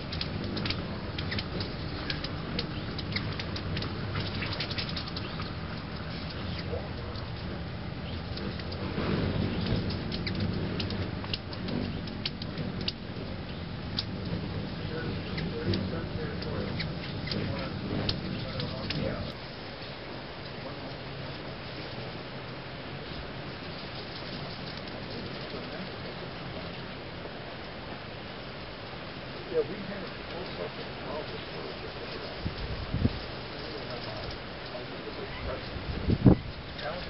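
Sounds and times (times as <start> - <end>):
low background rumble: 0.0 - 37.0
steady hiss: 0.0 - 37.0.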